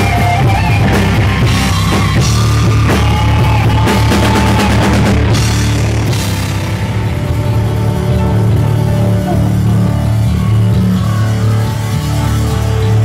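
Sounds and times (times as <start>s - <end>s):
held low bass notes: 0.0s - 13.0s
keyboard: 0.0s - 13.0s
rock band playing: 0.0s - 13.0s.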